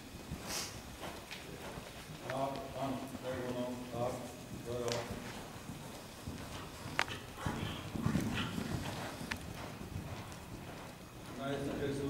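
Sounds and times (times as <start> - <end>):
horse hoofbeats on soft sand: 0.0 - 12.0.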